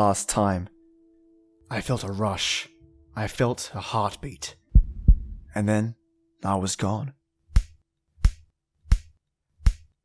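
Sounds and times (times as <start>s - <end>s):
heartbeat thumps: 4.7s - 5.5s.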